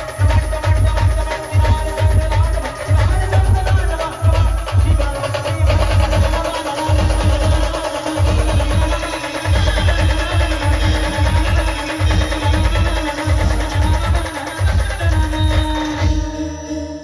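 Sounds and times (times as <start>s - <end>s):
electronic drum beat: 0.0s - 16.6s
live band music: 0.0s - 17.0s.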